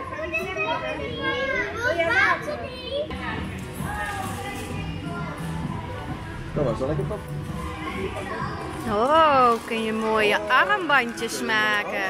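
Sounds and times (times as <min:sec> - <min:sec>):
young children chattering: 0:00.0 - 0:05.7.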